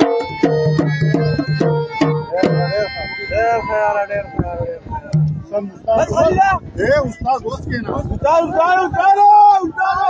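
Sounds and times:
tabla strokes: 0.0s - 2.7s
harmonium held notes: 0.0s - 5.5s.

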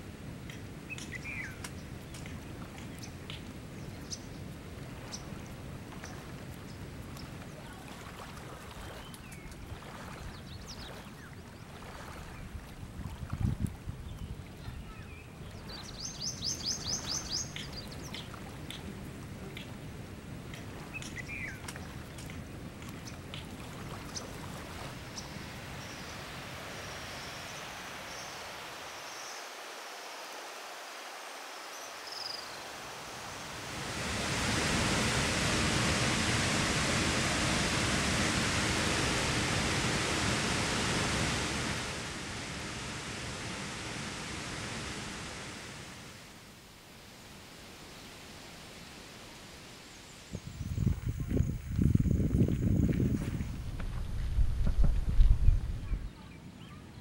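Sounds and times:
outdoor hiss: 0.0s - 7.4s, 14.6s - 21.6s, 24.6s - 55.9s
waterfall rushing: 24.9s - 46.4s
low thumps: 51.3s - 56.0s.

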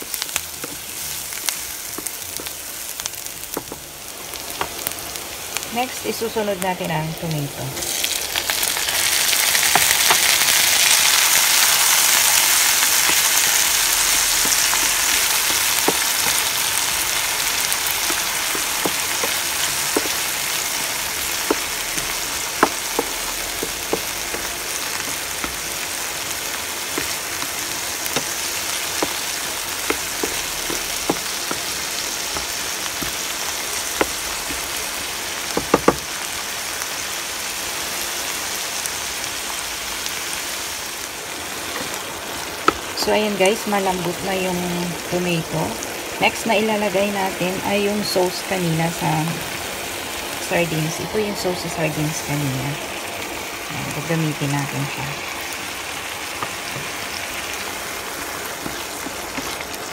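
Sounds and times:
tomatoes sizzling in hot oil: 0.0s - 59.9s
wooden spatula tapping pan: 3.5s - 3.8s, 17.5s - 25.8s, 26.9s - 34.8s, 35.5s - 36.1s, 42.6s - 42.9s.

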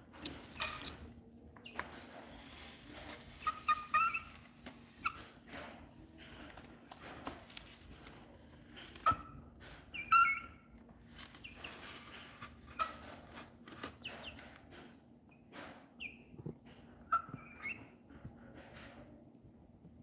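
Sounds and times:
chick peeping: 3.0s - 5.3s, 17.1s - 18.0s.

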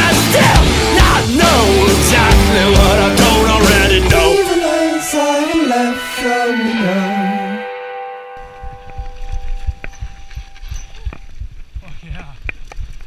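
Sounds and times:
rock song ending: 0.0s - 9.7s.

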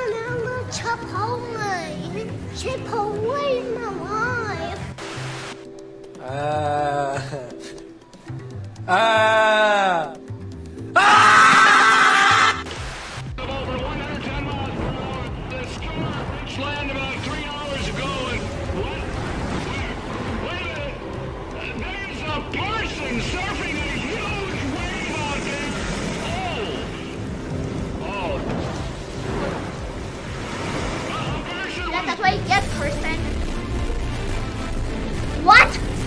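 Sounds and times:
background music: 0.0s - 36.0s
loud short scream: 11.0s - 12.6s.

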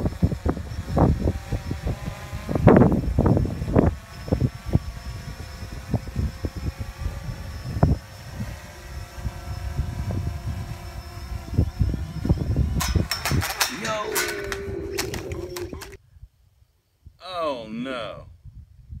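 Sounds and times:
quadcopter propellers humming: 0.0s - 16.0s
wind buffeting microphone: 0.0s - 16.2s, 18.3s - 19.0s
sharp clicks: 12.8s - 16.0s.

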